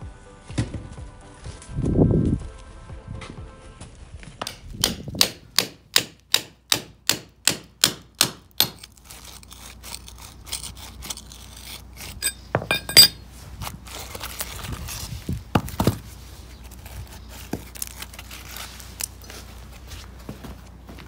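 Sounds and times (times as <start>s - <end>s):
brick and mortar scraping and clinking: 8.7s - 13.2s.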